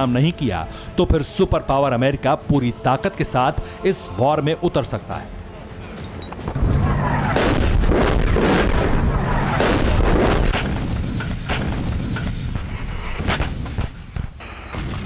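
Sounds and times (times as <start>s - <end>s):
artillery fire and booms: 6.6s - 15.0s
gunshot cracks: 9.5s - 12.0s.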